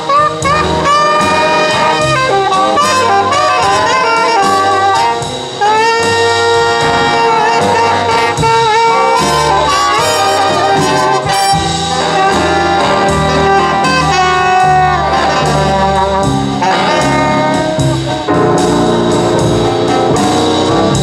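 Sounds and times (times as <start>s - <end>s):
alto saxophone solo: 0.0s - 21.0s
big band jazz: 0.0s - 21.0s.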